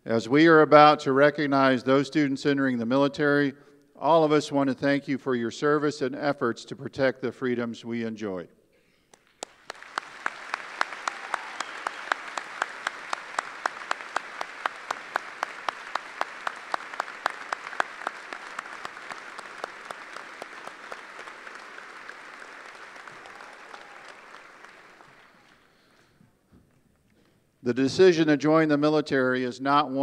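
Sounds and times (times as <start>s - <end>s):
nearby hands clapping loud: 9.1s - 26.1s
audience applauding: 9.1s - 26.2s.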